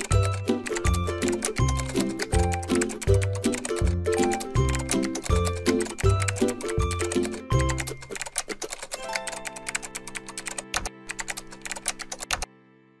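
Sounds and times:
fast typing on keyboard: 0.0s - 12.5s
background music with held notes: 0.0s - 13.0s.

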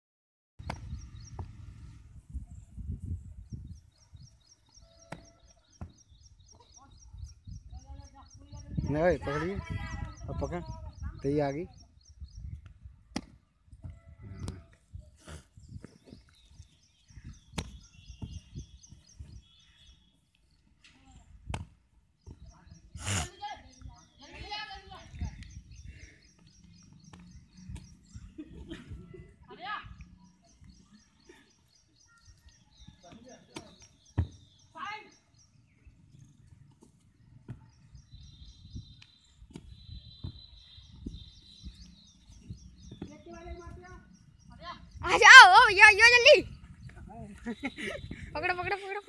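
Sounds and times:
wind rumble on microphone: 0.6s - 4.4s, 7.0s - 13.1s, 13.7s - 19.6s, 24.9s - 26.0s, 37.8s - 45.1s, 46.4s - 48.8s.

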